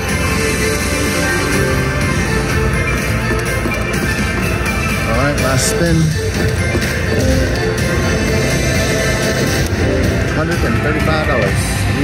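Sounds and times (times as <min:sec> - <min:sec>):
slot machine bonus music: 0:00.0 - 0:11.6.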